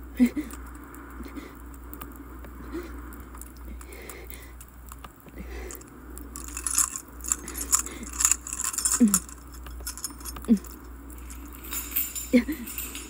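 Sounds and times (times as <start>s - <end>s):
low steady hum: 0.0s - 13.0s
metal chains rattling: 6.4s - 13.0s.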